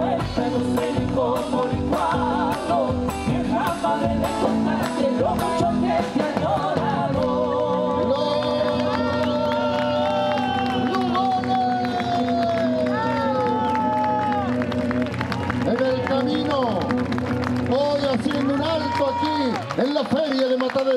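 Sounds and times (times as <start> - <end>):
live folk band playing: 0.0 - 20.5.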